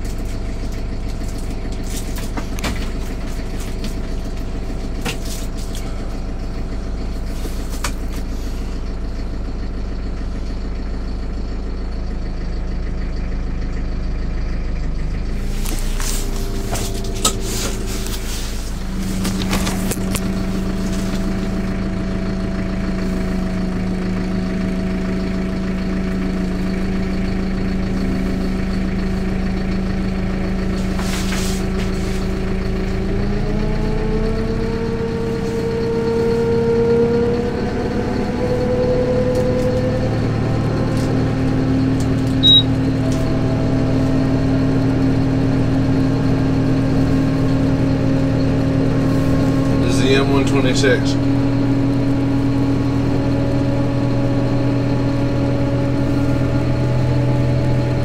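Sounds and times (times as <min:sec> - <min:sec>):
tractor diesel engine running: 0:00.0 - 0:58.0
brief high tone: 0:42.4 - 0:42.8.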